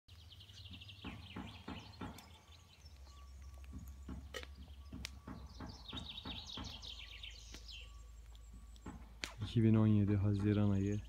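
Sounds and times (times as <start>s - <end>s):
songbirds singing: 0.1s - 11.0s.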